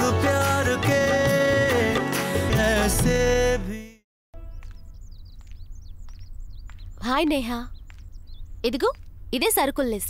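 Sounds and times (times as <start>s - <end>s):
small birds chirping: 4.4s - 10.0s.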